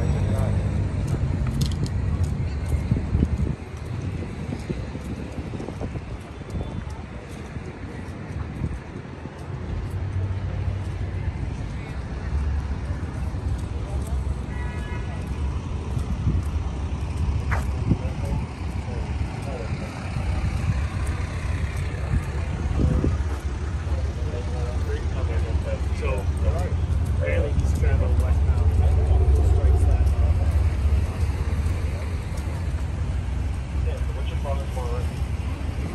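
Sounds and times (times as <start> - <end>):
street traffic rumble: 0.0 - 35.9
indistinct voices: 10.2 - 35.9.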